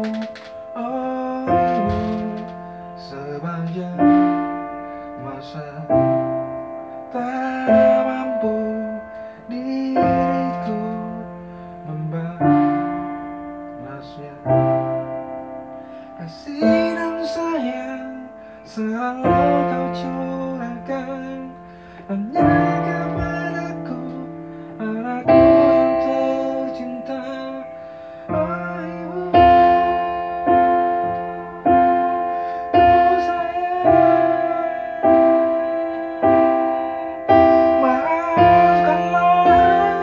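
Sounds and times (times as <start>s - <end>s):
electronic keyboard piano chords: 0.0s - 40.0s.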